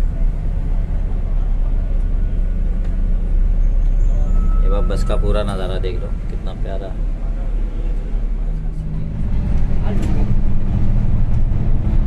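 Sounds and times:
bus engine and road drone: 0.0 - 12.0.

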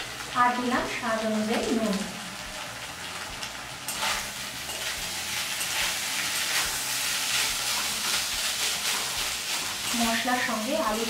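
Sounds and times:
potatoes sizzling in a pan: 0.0 - 11.0
metal spatula scraping a pan: 3.8 - 11.0.

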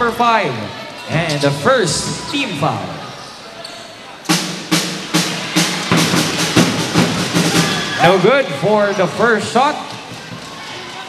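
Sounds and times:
drums beating steady rhythm: 4.2 - 11.0.

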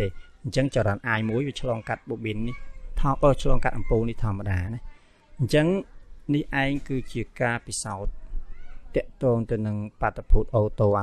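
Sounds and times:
man lecturing: 0.0 - 4.8, 5.4 - 8.1, 9.0 - 11.0.

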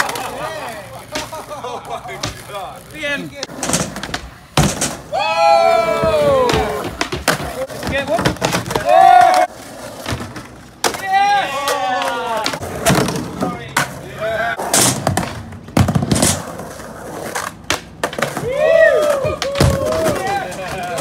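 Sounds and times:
skateboard clacking on wooden ramps: 0.0 - 5.1, 5.7 - 21.0
people shouting and whooping: 5.1 - 7.0, 8.7 - 9.5, 11.0 - 12.6, 18.3 - 21.0.

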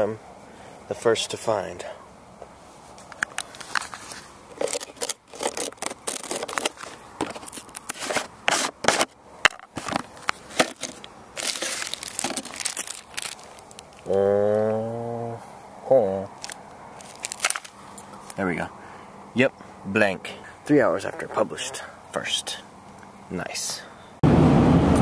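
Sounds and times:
plastic and paper rustling: 2.8 - 14.1, 16.3 - 18.4
plastic scraping: 3.0 - 14.0, 16.4 - 18.4.

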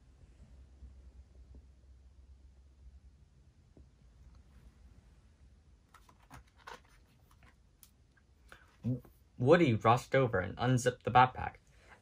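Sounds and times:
book page turning: 5.9 - 7.6.

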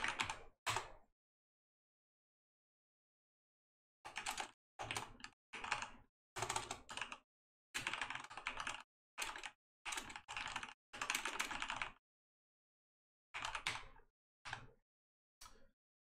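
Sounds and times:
typing on computer keyboard: 0.0 - 1.0, 4.1 - 7.2, 7.8 - 12.0, 13.4 - 14.8.

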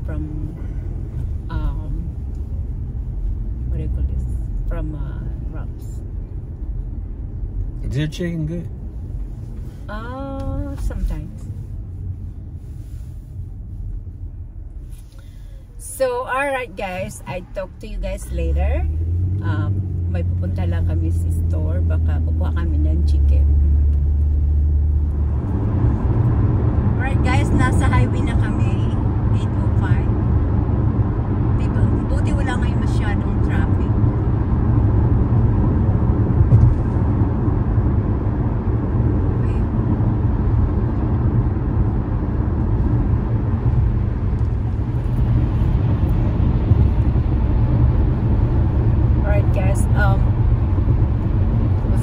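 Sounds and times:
car engine and road noise: 0.0 - 52.0.

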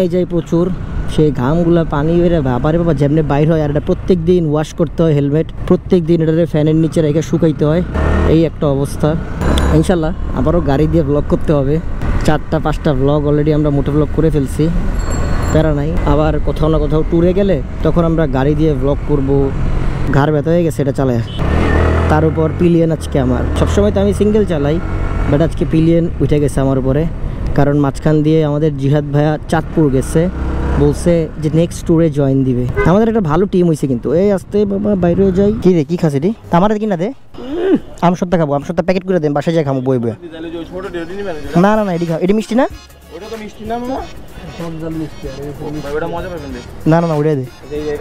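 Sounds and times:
man talking: 0.0 - 14.8, 22.0 - 48.0
city traffic: 0.0 - 48.0
road noise: 0.0 - 48.0
motorcycle running: 6.0 - 33.2.

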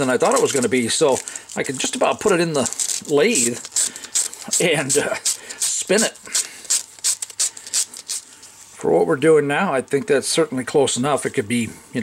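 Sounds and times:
sandpaper scratching plastic: 0.0 - 8.2.

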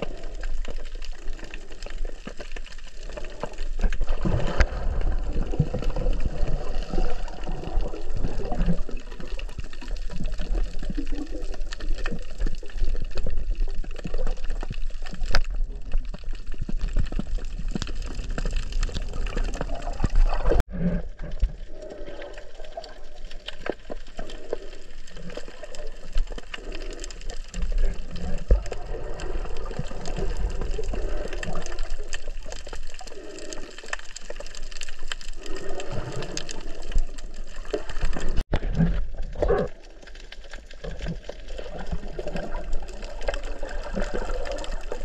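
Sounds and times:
water sloshing underwater: 0.0 - 45.0.

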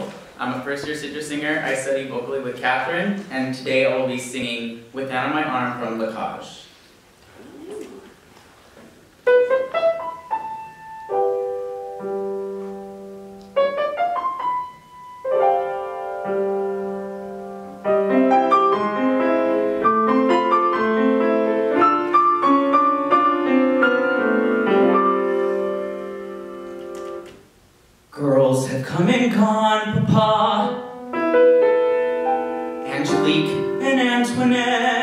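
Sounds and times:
piano playing: 9.2 - 27.3, 29.0 - 35.0.

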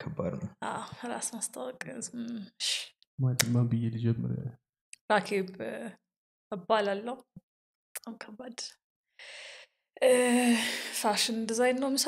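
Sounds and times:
person speaking softly: 0.0 - 0.5, 3.2 - 4.5
intake of breath: 9.2 - 9.7.

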